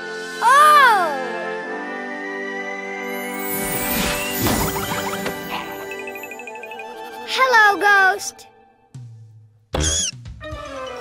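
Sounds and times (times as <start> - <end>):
children's background music: 0.0 - 9.2
squeaky cartoon creature cry: 9.8 - 10.2.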